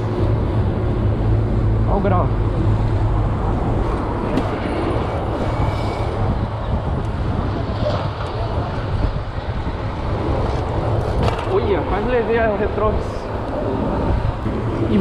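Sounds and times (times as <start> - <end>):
car traffic: 0.0 - 15.0
man talking: 1.8 - 2.4, 11.4 - 13.4
bicycle rushing noise: 2.4 - 15.0.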